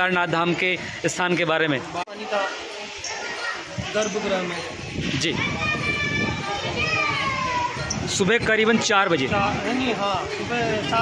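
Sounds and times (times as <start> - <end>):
children's voices: 2.2 - 8.2.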